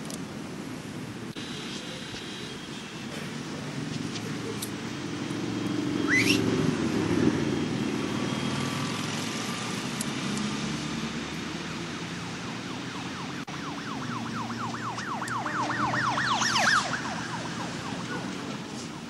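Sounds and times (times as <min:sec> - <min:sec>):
city street traffic: 0:00.0 - 0:19.0
vehicle passing: 0:03.6 - 0:19.0
high rising squeal: 0:05.5 - 0:09.7.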